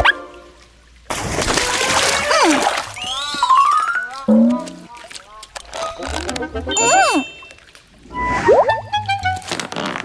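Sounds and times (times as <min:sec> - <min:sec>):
body splashing into pool: 0:01.1 - 0:03.4
cartoon music: 0:03.1 - 0:04.9, 0:06.4 - 0:07.5.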